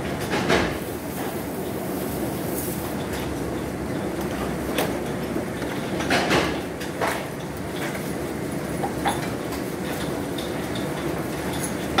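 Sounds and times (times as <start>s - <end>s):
car wash machinery rumble: 0.0s - 12.0s.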